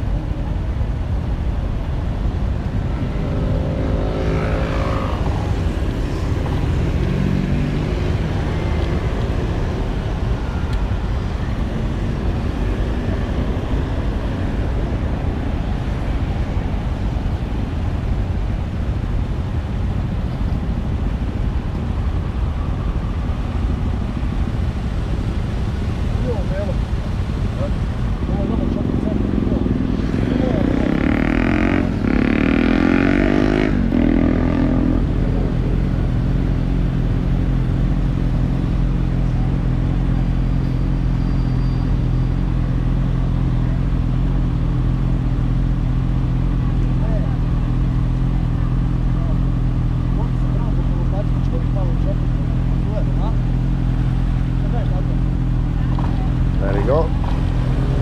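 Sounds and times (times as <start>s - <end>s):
loud vehicle passing: 2.4s - 18.8s, 22.3s - 58.0s.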